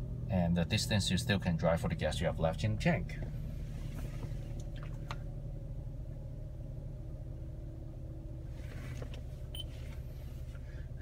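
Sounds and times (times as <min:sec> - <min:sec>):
car engine idling: 0:00.0 - 0:11.0
faint steady hum: 0:00.0 - 0:11.0.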